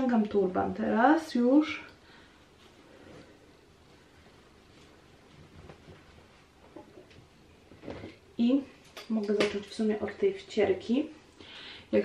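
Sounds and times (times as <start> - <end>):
towel rustling on wet hair: 2.3 - 8.2.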